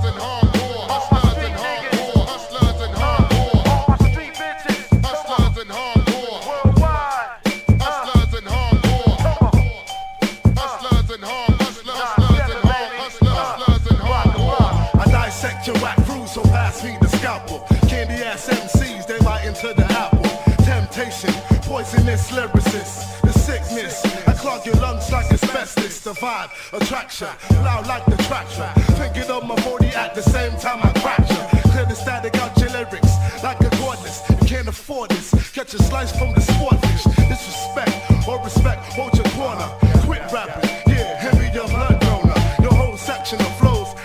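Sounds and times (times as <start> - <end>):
deep bass line: 0.0 - 1.7, 2.6 - 4.3, 4.9 - 5.6, 6.6 - 7.1, 7.7 - 9.9, 10.5 - 11.2, 12.2 - 23.8, 24.8 - 25.4, 27.5 - 34.8, 35.8 - 44.0
rapping over a beat: 0.0 - 44.0.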